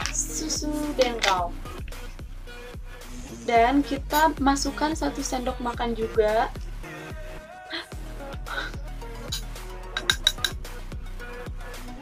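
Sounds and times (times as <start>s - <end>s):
background music: 0.0s - 12.0s
metal spoon clinking on glass bowl: 9.3s - 10.6s.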